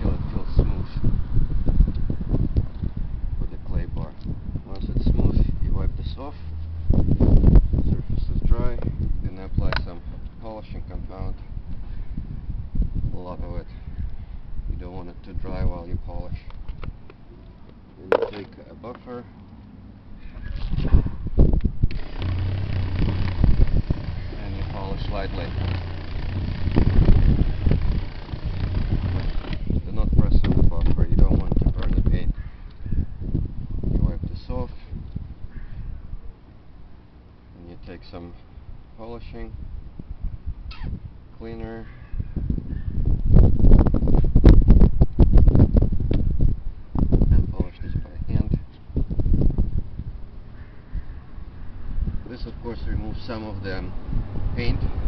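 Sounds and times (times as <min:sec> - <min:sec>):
wind buffeting microphone: 0:00.0 - 0:17.1, 0:20.2 - 0:36.3, 0:39.5 - 0:55.0
electric car buffer motor hum: 0:21.9 - 0:29.8.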